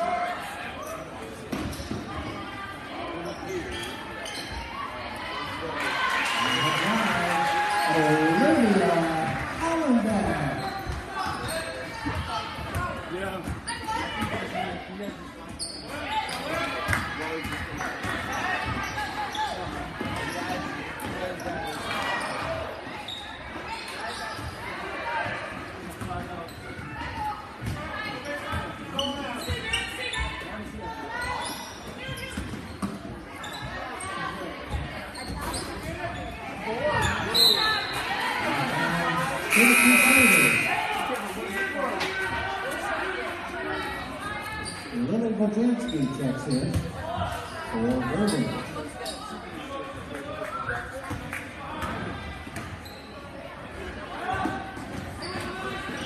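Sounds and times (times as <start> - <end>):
spectators chattering: 0.0 - 56.0
players calling out: 38.6 - 41.3
scoreboard horn: 39.5 - 40.8
short high whistle: 39.5 - 41.0.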